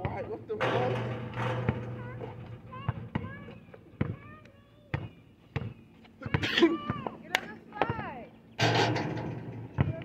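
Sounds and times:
basketball bouncing on asphalt: 0:00.0 - 0:00.4, 0:01.5 - 0:08.2, 0:09.7 - 0:10.0.

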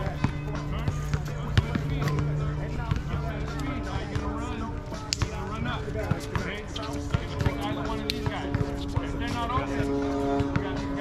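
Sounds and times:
background music: 0:00.0 - 0:11.0
players' voices: 0:00.0 - 0:11.0
basketball bouncing on hard court: 0:00.1 - 0:03.2, 0:06.0 - 0:09.4.

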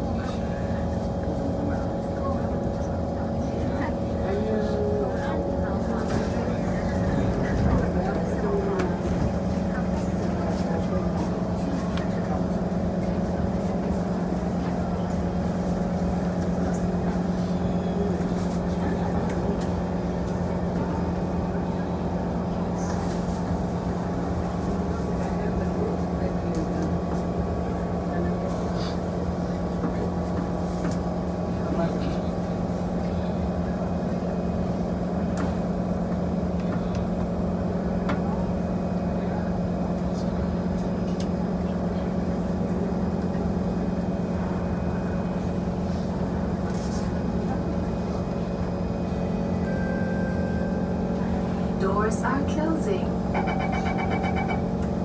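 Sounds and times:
train equipment hum: 0:00.0 - 0:55.0.

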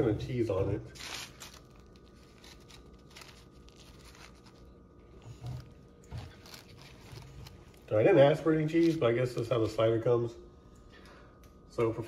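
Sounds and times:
paper wrappers crinkling: 0:00.3 - 0:09.9.

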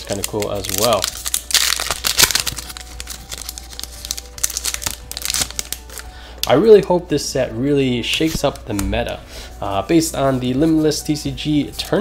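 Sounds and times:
foil wrapper crinkling: 0:00.0 - 0:06.1.

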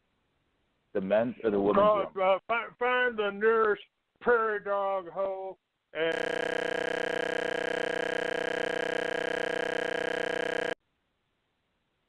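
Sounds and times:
loud electronic buzz tone: 0:06.1 - 0:10.8.

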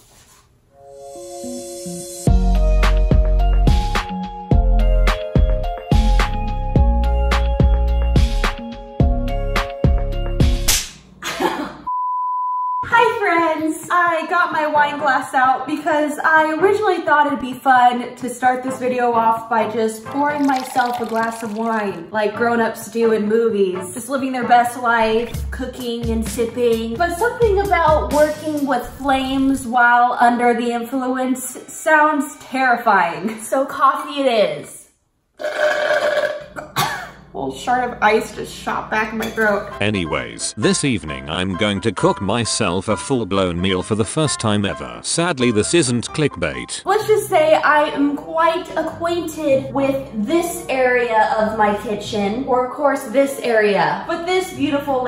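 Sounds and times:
high-pitched censor beep: 0:11.9 - 0:12.9.

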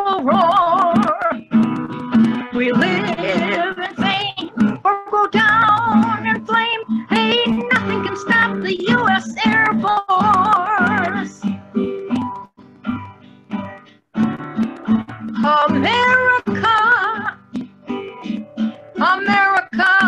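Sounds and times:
person singing: 0:00.0 - 0:01.5, 0:02.2 - 0:11.4, 0:15.4 - 0:17.4, 0:19.0 - 0:20.0
acoustic guitar strumming: 0:00.0 - 0:20.0.

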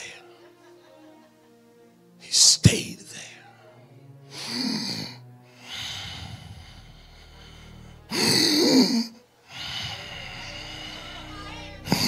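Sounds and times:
man breathing heavily: 0:03.4 - 0:12.0.

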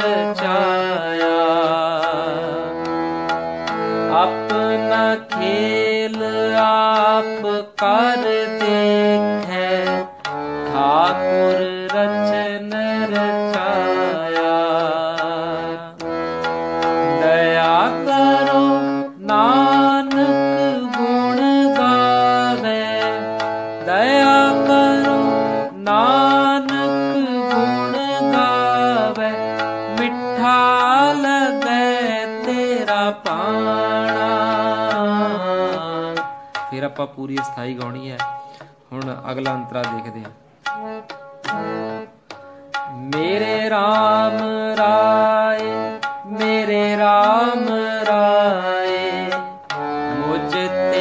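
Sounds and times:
harmonium playing held notes: 0:00.0 - 0:51.0
person singing: 0:00.0 - 0:51.0.

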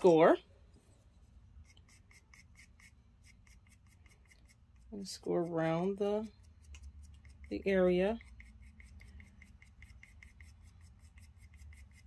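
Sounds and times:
scratch tool scoring clay: 0:01.6 - 0:12.0.

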